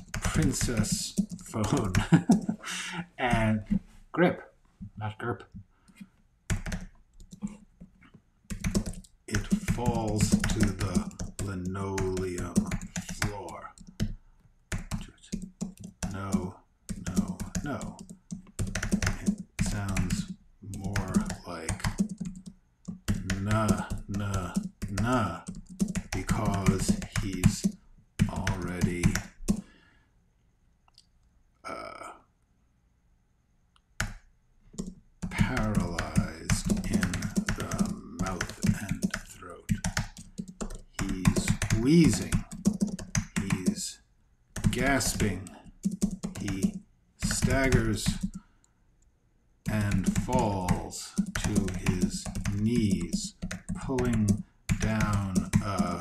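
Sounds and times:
typing on computer keyboard: 0.0 - 2.6, 5.9 - 29.6, 34.0 - 43.8, 44.6 - 48.4, 49.7 - 56.0.

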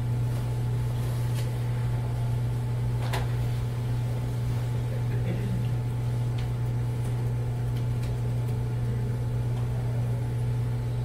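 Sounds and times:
steady low-pitched hum: 0.0 - 11.0.

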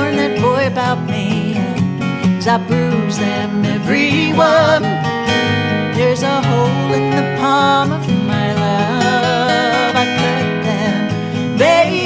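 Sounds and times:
man singing: 0.0 - 1.8, 2.4 - 5.0, 5.9 - 12.0
acoustic guitars strummed: 0.0 - 12.0
woman singing folk song: 0.0 - 12.0.

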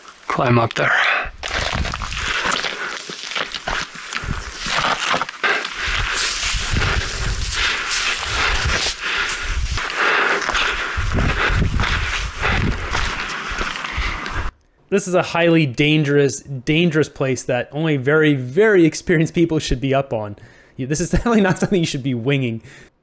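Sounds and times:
wind buffeting microphone: 1.3 - 2.4, 4.2 - 4.7, 5.8 - 14.5
footsteps on grass and rock: 1.4 - 14.5.

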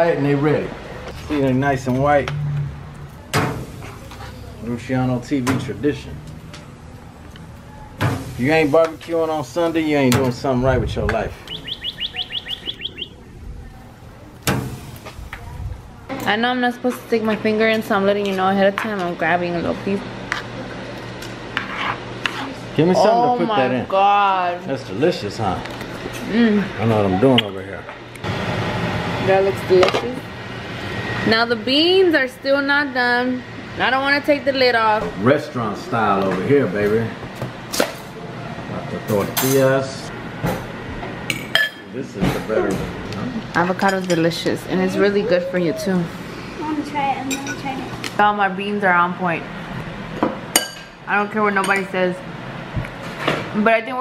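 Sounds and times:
bird chirping: 11.4 - 14.1
metal fork clinking on dishes: 43.8 - 44.3, 47.3 - 47.6.

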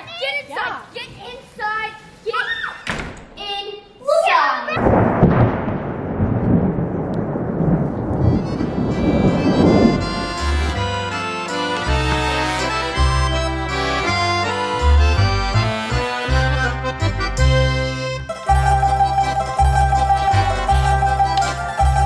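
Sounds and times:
low rumble of thunder: 4.8 - 10.4
rain falling: 4.8 - 14.0
background music with held chords: 8.4 - 22.0.

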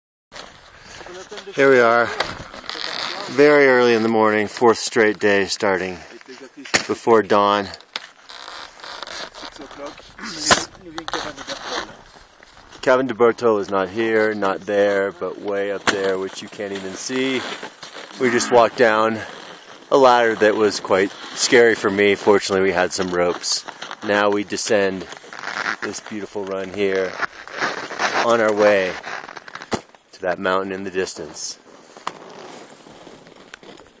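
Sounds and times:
footsteps crunching on snow: 11.2 - 12.8, 16.2 - 19.9.

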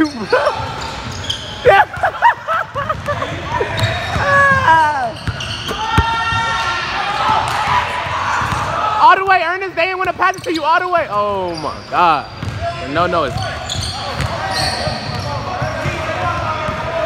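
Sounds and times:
players shouting: 0.0 - 9.7, 12.5 - 17.0.

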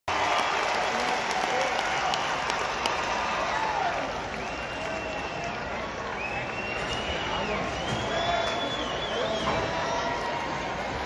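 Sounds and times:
crowd cheering and shouting: 0.1 - 11.0
crowd clapping: 0.1 - 11.0.

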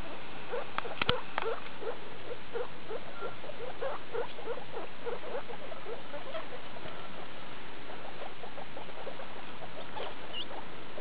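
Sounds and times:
guinea pigs squeaking: 0.0 - 11.0.

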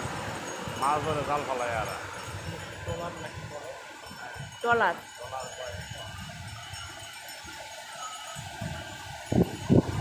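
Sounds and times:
surf breaking on beach: 0.0 - 3.5
wind on microphone: 0.0 - 3.6, 5.8 - 6.9, 8.4 - 10.0.

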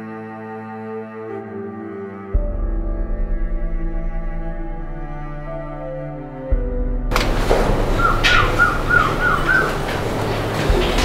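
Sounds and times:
machinery low hum: 2.8 - 11.0
warbling chirps: 7.8 - 10.3.

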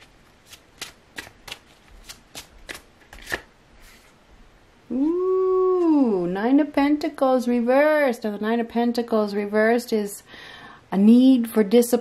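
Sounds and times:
cards being shuffled: 0.0 - 4.1.

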